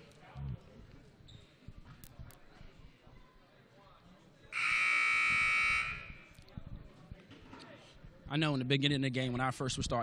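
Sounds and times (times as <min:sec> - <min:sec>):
scoreboard horn blast: 0:04.6 - 0:06.2.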